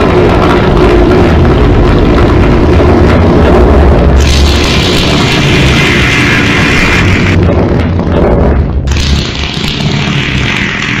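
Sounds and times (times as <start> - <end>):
distorted rumbling fart: 0.0 - 11.0.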